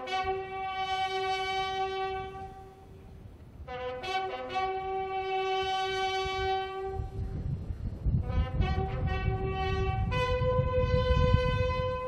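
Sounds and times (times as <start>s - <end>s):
bugle holding long note: 0.0s - 7.4s, 8.2s - 12.0s
low wind rumble: 0.0s - 12.0s.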